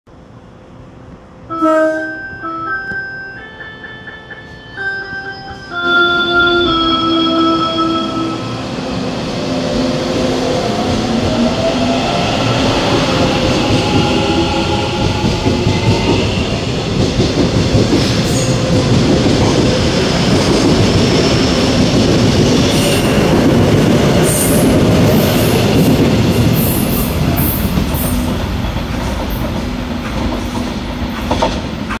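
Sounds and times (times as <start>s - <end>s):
wheels on rails with clicks: 27.7s - 31.8s.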